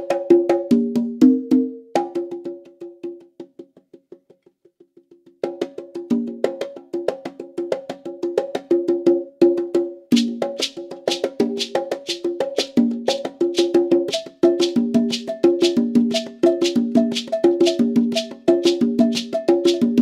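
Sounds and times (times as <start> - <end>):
congas played with bare hands: 0.0 - 20.0.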